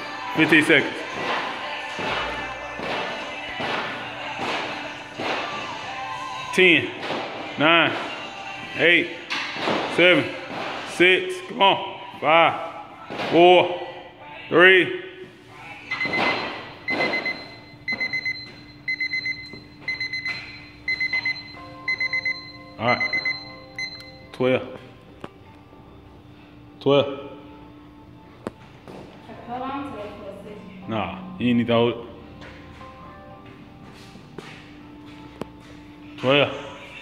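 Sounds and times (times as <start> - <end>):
music playing: 0.0 - 37.0
battle ropes slapping rubber floor: 1.0 - 5.7, 9.5 - 10.9
workout timer alarm beeping: 15.9 - 24.4.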